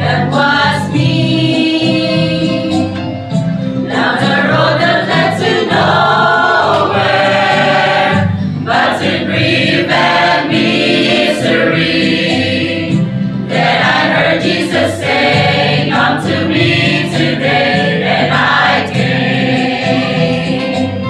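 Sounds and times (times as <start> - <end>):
mixed choir singing gospel: 0.0 - 21.0.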